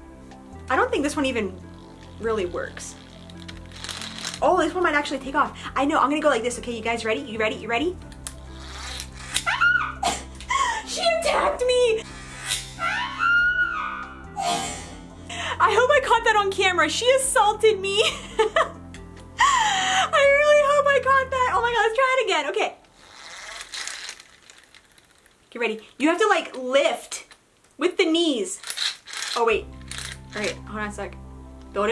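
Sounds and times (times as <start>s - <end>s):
plastic toy rustling: 2.8s - 4.6s, 8.6s - 9.5s, 22.9s - 26.1s, 28.5s - 30.6s
woman shrieking: 9.4s - 11.6s, 12.8s - 14.8s.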